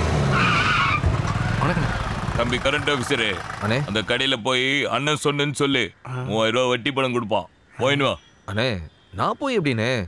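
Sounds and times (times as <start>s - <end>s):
tyre screech: 0.3s - 2.1s
vehicle engine running: 1.0s - 4.2s
voices: 1.5s - 10.0s.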